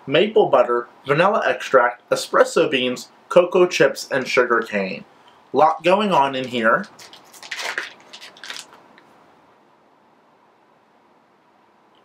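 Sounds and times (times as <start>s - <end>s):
plastic bag crinkling: 6.1s - 9.1s.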